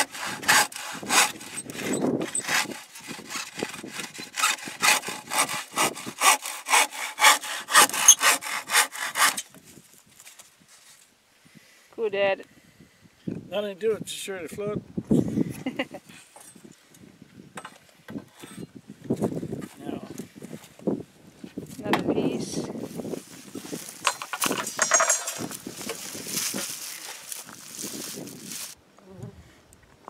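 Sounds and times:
handsaw rasping: 0.0 - 9.5
lumber knocking and scraping: 23.6 - 27.6.

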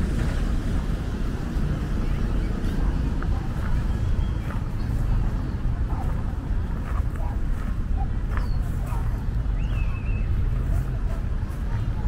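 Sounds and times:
faint distant voices: 0.0 - 12.0
steady low rumble: 0.0 - 12.0
bird chirp: 2.0 - 6.0, 8.2 - 10.6.

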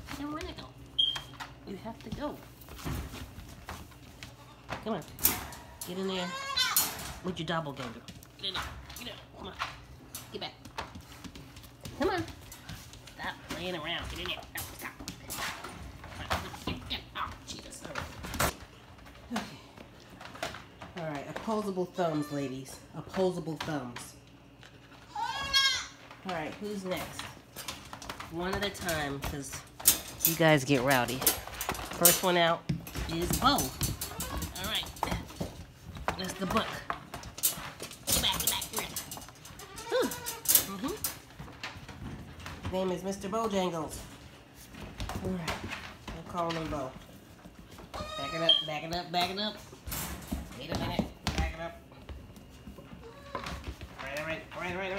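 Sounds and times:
goat kid bleating: 6.0 - 6.8, 25.1 - 26.0, 48.0 - 48.5.

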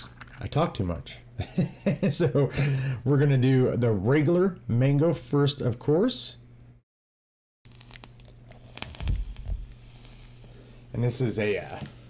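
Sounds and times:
low electrical hum: 0.0 - 6.8, 7.7 - 12.0.

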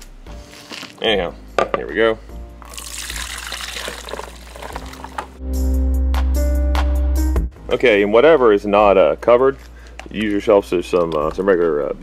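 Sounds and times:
loud background music: 0.0 - 7.8
liquid splashing into glass bowl: 2.7 - 5.3.

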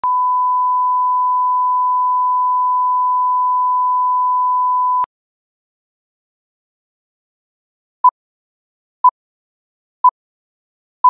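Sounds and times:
pure line-up tone beep: 0.0 - 5.1.

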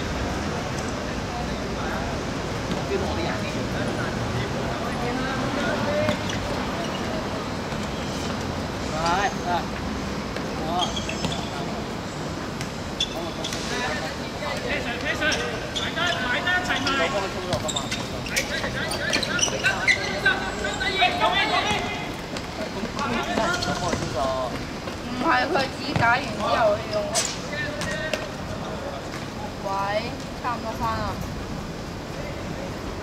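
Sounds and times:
players calling and shouting: 0.0 - 31.1
outdoor background noise: 0.0 - 33.0.

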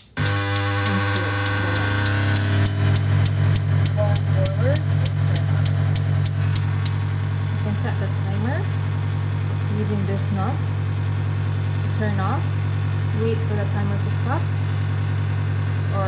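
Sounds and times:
spark igniter ticking: 0.0 - 7.3
loud steady low hum: 0.0 - 16.0.

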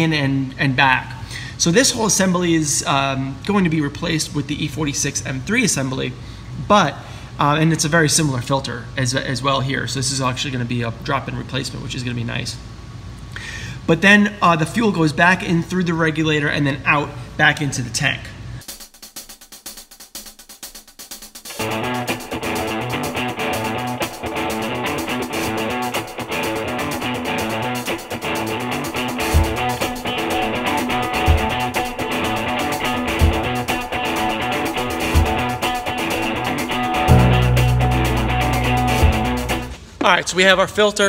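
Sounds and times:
guitar background music: 21.5 - 39.8
heavy bass line: 21.6 - 39.8
low beats: 21.6 - 39.8.

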